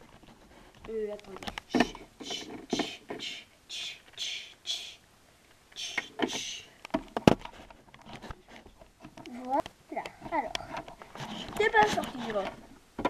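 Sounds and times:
short hisses: 1.7s - 5.0s, 5.8s - 6.8s
child making wordless sounds: 9.3s - 10.8s, 11.6s - 12.6s.

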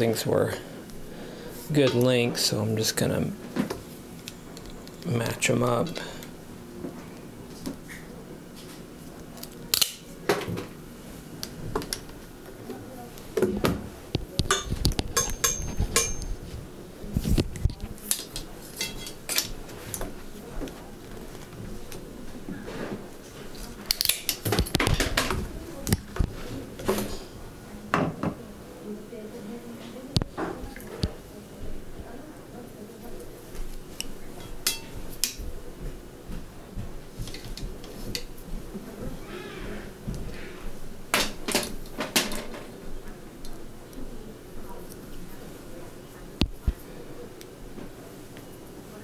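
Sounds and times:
cable cutters cutting cable housing: 9.4s - 10.0s, 23.9s - 24.9s.

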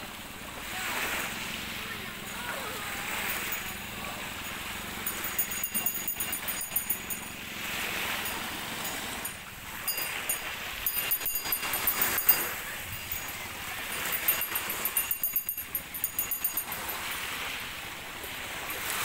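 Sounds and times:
small waves washing ashore: 0.0s - 19.0s.

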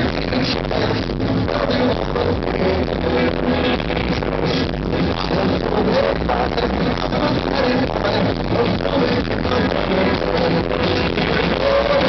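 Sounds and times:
live band playing pop-rock: 0.0s - 12.0s.

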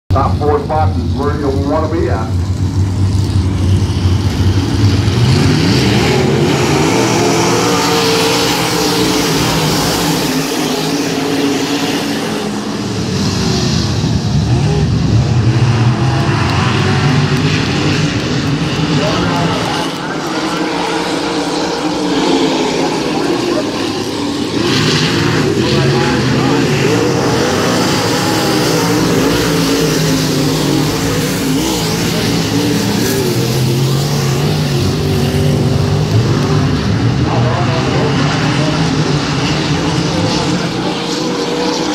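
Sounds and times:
race car engines revving: 0.0s - 41.9s.

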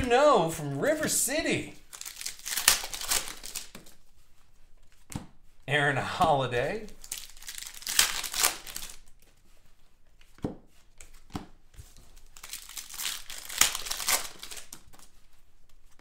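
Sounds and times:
foil wrappers crinkling and tearing: 1.9s - 4.0s, 6.9s - 9.2s, 12.2s - 15.2s.

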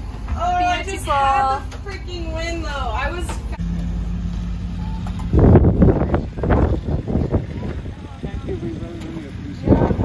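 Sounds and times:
wind on microphone: 5.2s - 10.0s.

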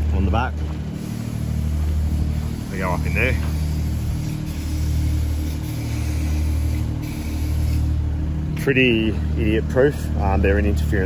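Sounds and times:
large engine droning: 0.0s - 11.0s.

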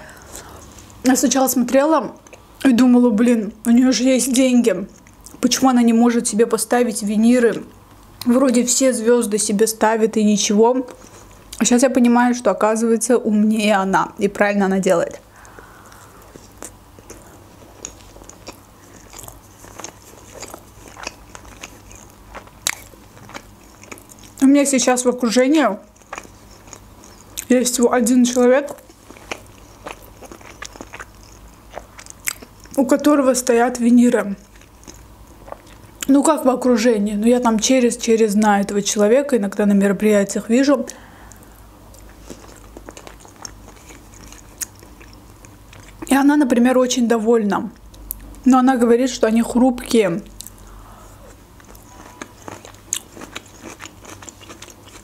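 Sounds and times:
mouth chewing with wet smacks: 15.4s - 24.4s, 25.8s - 27.6s, 28.3s - 32.8s, 34.4s - 36.1s, 41.3s - 46.1s, 51.3s - 55.0s.

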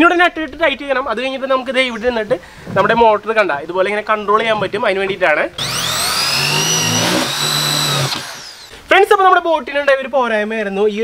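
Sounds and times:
electric drill drilling into metal: 5.6s - 8.8s.

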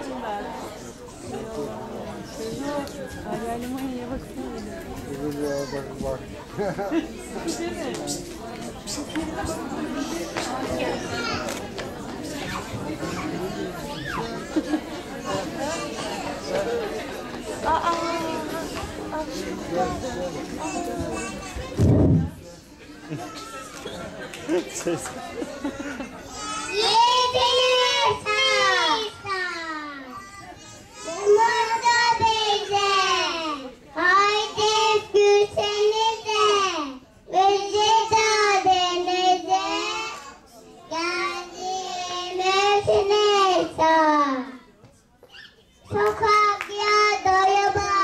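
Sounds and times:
children calling out and chattering: 0.0s - 48.0s
general babble of voices: 0.0s - 48.0s
child singing over a microphone: 31.0s - 40.3s, 40.9s - 44.6s, 45.9s - 48.0s.

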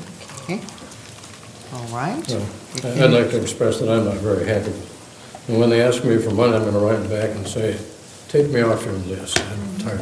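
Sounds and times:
microphone and room hiss: 0.0s - 10.0s
person speaking: 9.5s - 10.0s.

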